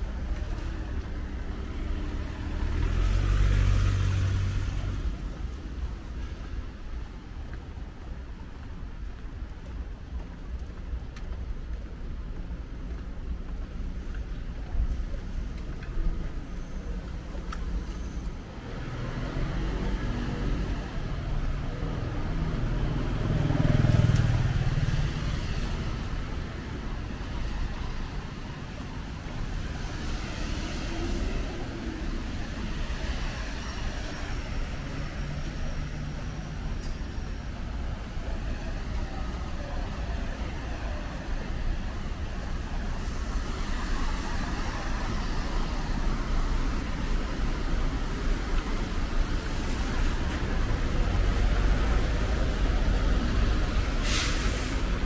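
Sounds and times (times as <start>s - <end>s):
hum of passing vehicles: 0.0s - 7.5s, 15.2s - 55.0s.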